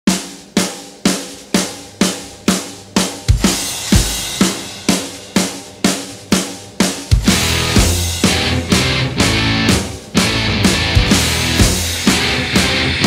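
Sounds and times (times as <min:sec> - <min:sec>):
snare drum beat: 0:00.1 - 0:13.0
cymbal wash: 0:00.2 - 0:10.1
bass drum hits: 0:07.1 - 0:13.0.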